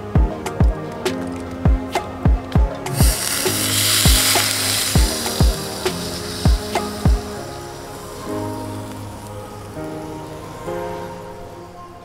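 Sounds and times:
background music: 0.0s - 12.0s
flux sizzling in molten solder: 2.9s - 9.9s.

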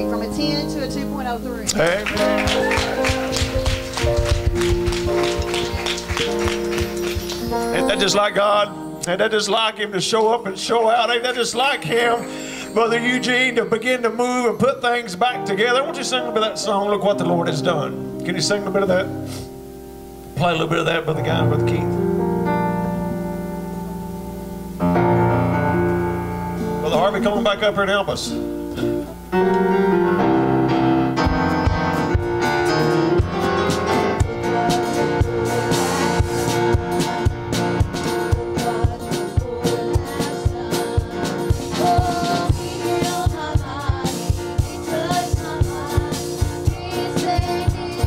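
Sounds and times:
keyboard sustained chords: 0.0s - 45.0s
hands clapping: 1.7s - 7.8s.

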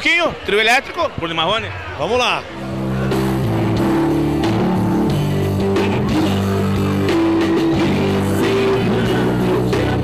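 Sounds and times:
live band music: 2.6s - 10.0s.

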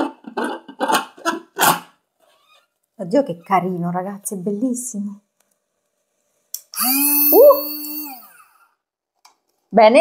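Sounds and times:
blender motor whine: 6.6s - 8.6s.

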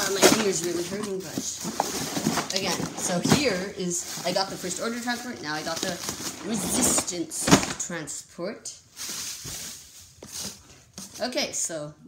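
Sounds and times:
rustling handling noise: 0.0s - 8.0s, 8.9s - 11.4s.

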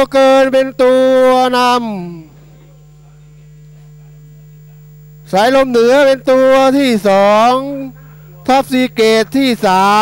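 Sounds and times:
race caller calling: 0.0s - 2.3s, 5.3s - 10.0s
electrical mains hum: 0.0s - 10.0s.

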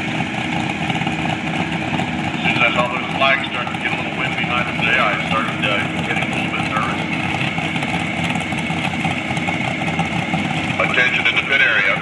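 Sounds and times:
vehicle engines idling: 0.0s - 12.0s.

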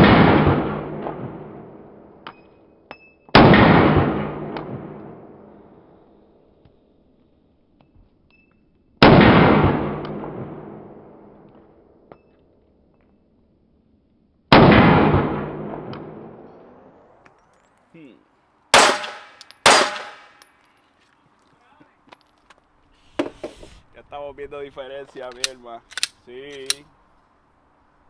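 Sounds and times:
pistol shots echoing: 18.7s - 20.5s.

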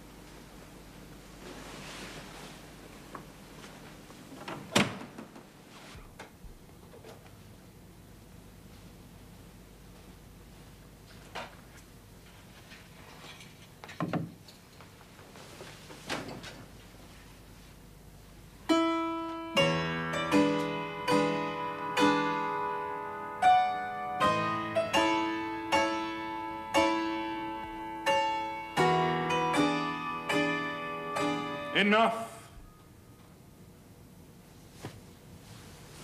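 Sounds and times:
piano tune: 18.6s - 32.8s.

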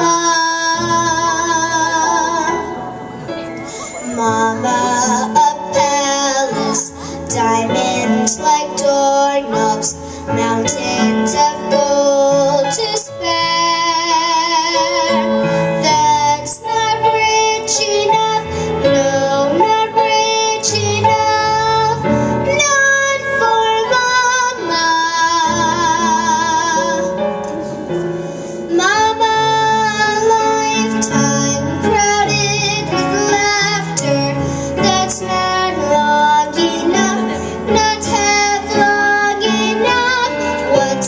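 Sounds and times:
girl singing a ballad: 0.0s - 27.7s, 28.3s - 41.0s
recorded piano accompaniment: 0.0s - 41.0s.

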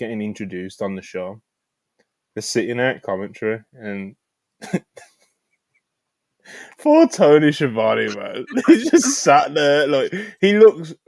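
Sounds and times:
man's breathy laugh: 4.6s - 5.4s, 8.2s - 9.3s.

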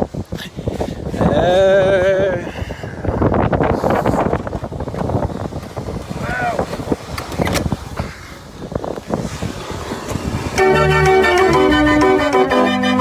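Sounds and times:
street organ playing: 10.5s - 13.0s.

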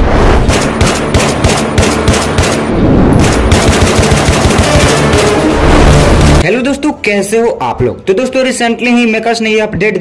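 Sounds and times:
rapid automatic gunfire: 0.4s - 5.3s.

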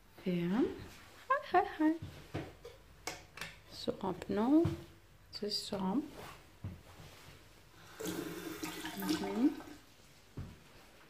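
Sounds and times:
tap water running: 7.8s - 9.9s.

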